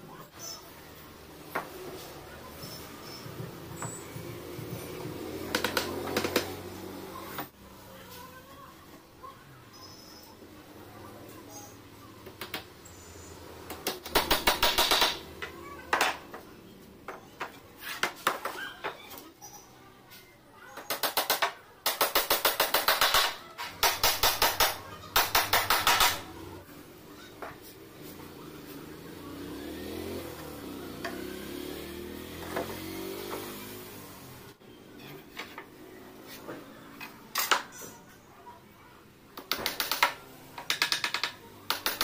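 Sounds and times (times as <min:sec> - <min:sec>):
pneumatic nail gun firing: 0:13.9 - 0:15.2, 0:20.9 - 0:26.2.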